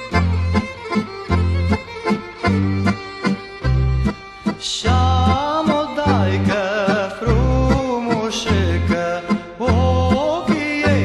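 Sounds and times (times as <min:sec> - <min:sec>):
accordion-led folk band: 0:00.0 - 0:11.0.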